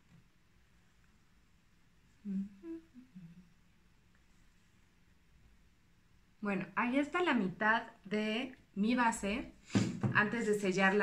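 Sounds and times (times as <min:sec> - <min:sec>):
woman humming: 0:02.2 - 0:03.6.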